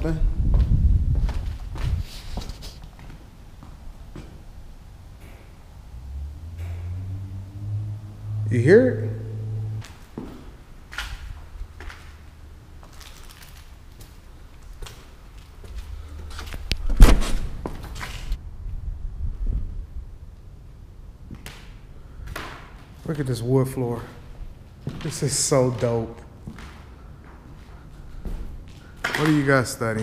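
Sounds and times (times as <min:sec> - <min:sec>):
low rumble: 0:05.8 - 0:12.5, 0:15.8 - 0:21.3
loud thump: 0:16.8 - 0:17.8.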